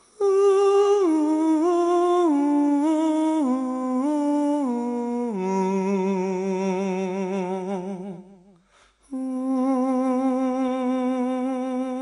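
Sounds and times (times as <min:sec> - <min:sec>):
person humming a melody: 0:00.0 - 0:12.0.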